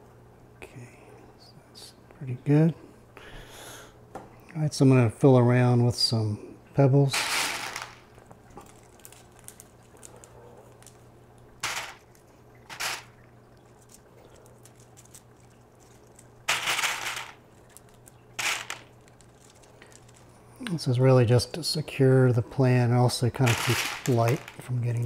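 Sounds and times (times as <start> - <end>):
clay pebbles rattling: 7.0 - 20.6, 23.2 - 25.0.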